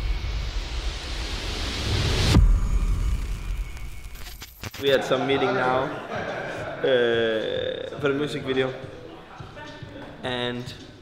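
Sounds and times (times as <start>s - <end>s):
rising white-noise sweep: 0.0s - 4.4s.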